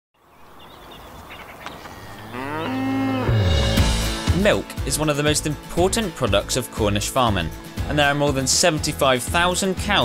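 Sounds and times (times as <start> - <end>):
cow mooing: 2.0 - 3.8
music: 3.1 - 10.0.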